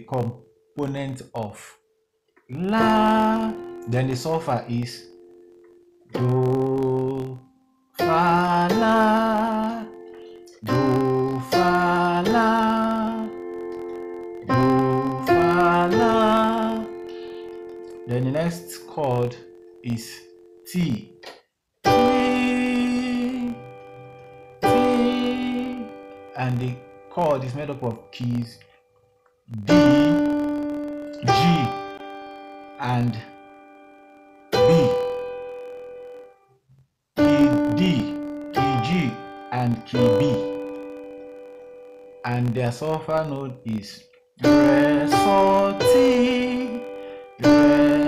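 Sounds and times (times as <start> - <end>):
electronic keyboard chords: 2.4 - 36.6, 37.2 - 48.0.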